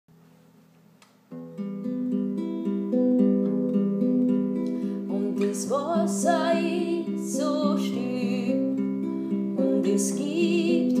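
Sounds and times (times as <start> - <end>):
classical guitar picking: 1.2 - 11.0.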